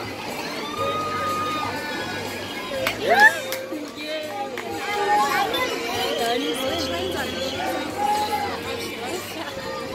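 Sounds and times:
spectators shouting and cheering: 0:00.0 - 0:09.9.

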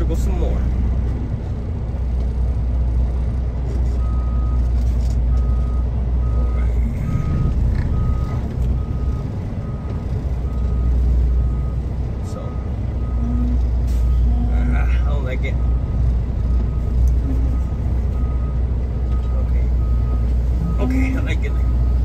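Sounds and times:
diesel truck engine droning: 0:00.0 - 0:22.0
reversing alarm beeping: 0:05.3 - 0:22.0.

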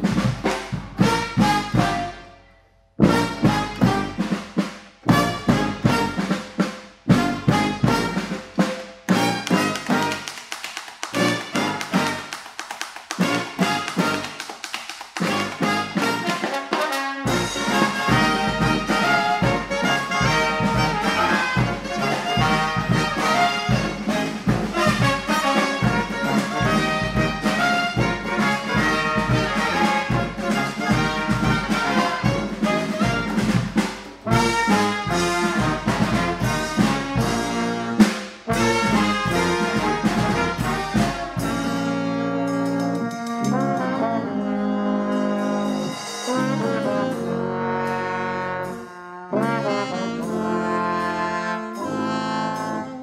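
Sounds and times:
bass drum and snare: 0:00.0 - 0:02.2, 0:03.0 - 0:43.9
brass band playing funk: 0:00.0 - 0:53.0.

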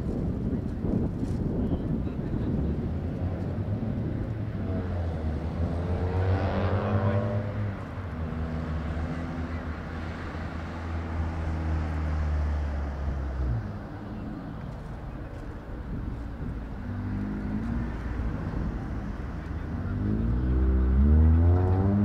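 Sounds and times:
vehicle engine drone: 0:00.0 - 0:22.0.

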